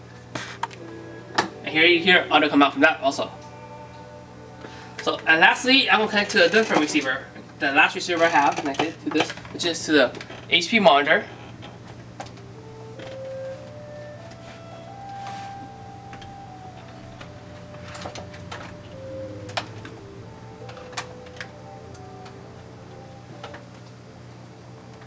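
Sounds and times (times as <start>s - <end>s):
faint music from small speaker: 0.0s - 25.0s.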